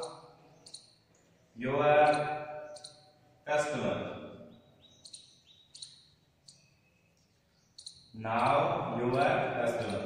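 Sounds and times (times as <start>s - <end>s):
marker squeaking on whiteboard: 0.0s - 1.0s, 2.1s - 3.2s, 5.0s - 6.7s.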